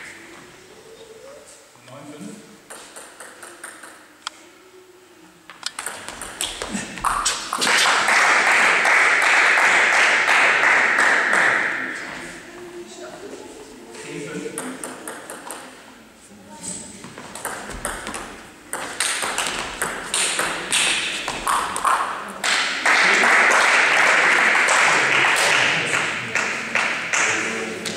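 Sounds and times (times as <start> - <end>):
crowd noise: 2.6 - 27.9
table tennis ball clicking: 2.7 - 4.0, 5.6 - 7.6.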